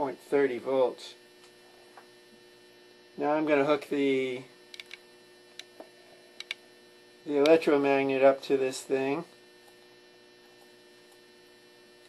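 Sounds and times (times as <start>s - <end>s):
faint electrical hum: 0.0s - 12.0s
small clicks of test leads: 4.7s - 6.6s.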